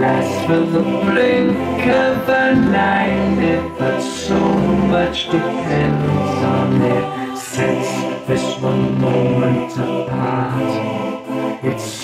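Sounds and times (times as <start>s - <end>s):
folk music accompaniment: 0.0s - 11.4s
choir-like voices in harmony: 0.0s - 12.0s.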